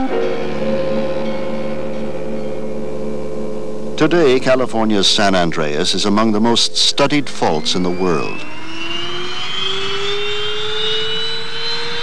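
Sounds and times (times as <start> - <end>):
jet engines whining: 3.6 - 12.0.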